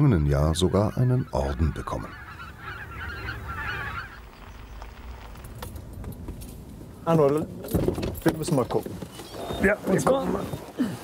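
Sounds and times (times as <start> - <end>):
geese honking: 0.0 - 5.3.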